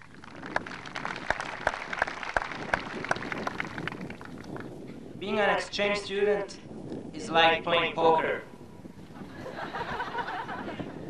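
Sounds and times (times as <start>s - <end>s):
audience applauding: 0.1s - 4.6s.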